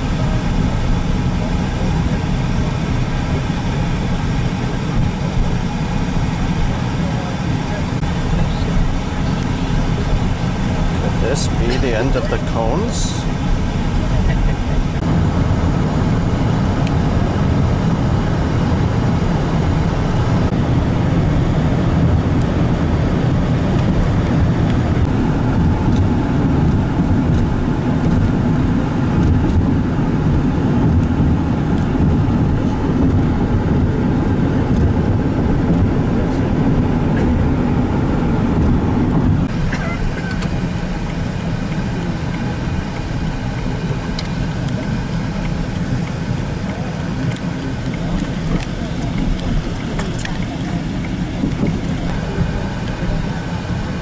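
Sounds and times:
car road noise from inside: 0.0 - 54.0.

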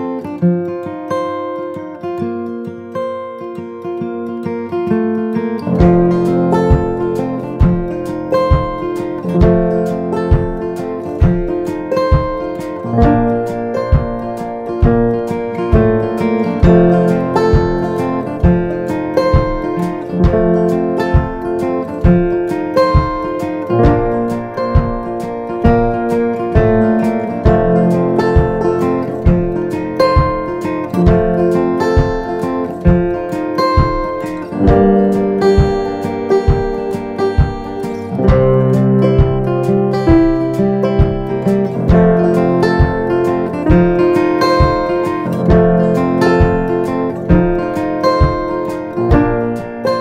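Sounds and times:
strummed acoustic guitar: 0.0 - 50.0.

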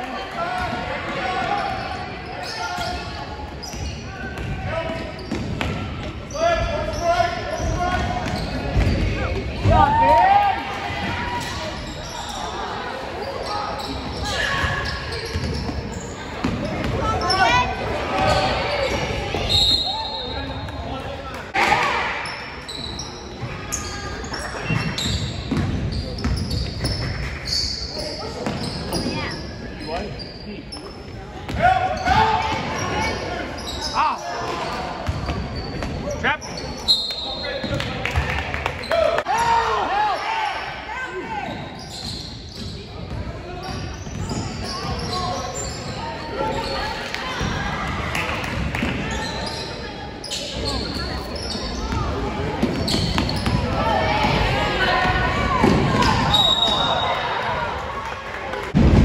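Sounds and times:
voices and shouts: 0.0 - 25.0, 31.2 - 42.2, 43.3 - 58.8.

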